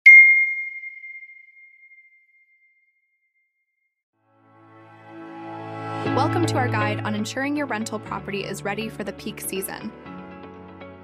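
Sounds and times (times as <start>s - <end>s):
bright bell-like ding: 0.1s - 2.3s.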